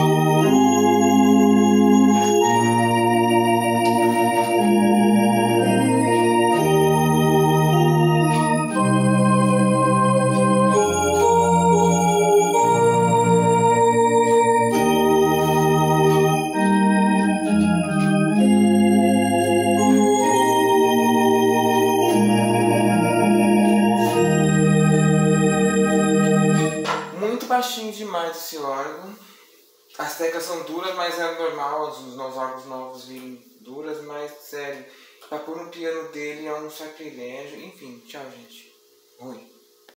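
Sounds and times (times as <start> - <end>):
electronic organ chords: 0.0 - 27.7.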